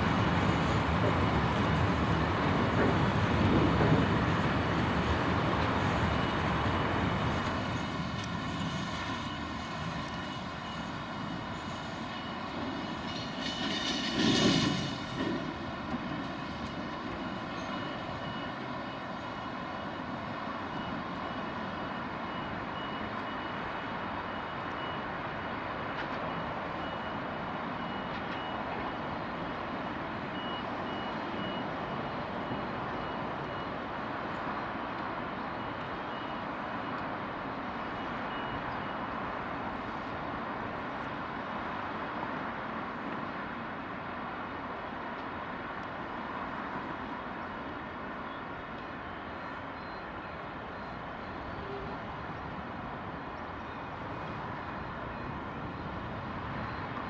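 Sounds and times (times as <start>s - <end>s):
train wagons clattering: 0.0s - 19.9s
train wheels rolling on rails: 0.0s - 57.0s.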